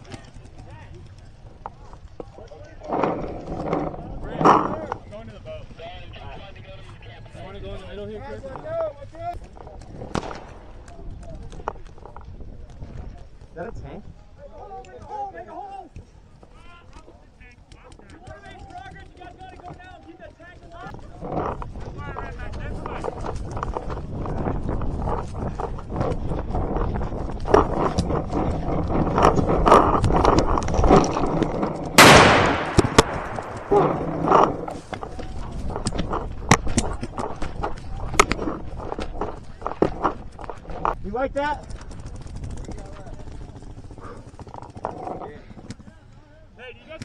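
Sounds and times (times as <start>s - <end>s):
distant voices: 0.0s - 47.0s
paintball markers firing: 9.4s - 12.2s, 27.4s - 40.8s
loud blast: 32.0s - 34.0s.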